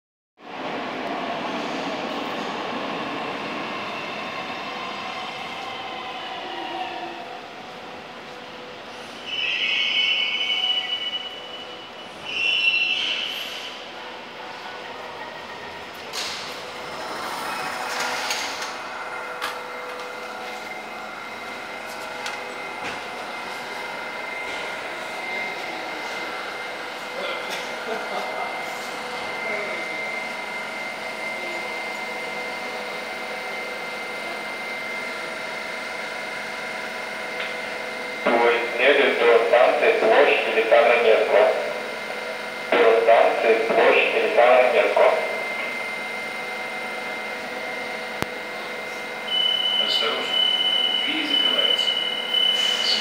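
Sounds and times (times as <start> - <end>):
train running noise: 0.5 - 53.0
traction drive whine: 3.1 - 53.0.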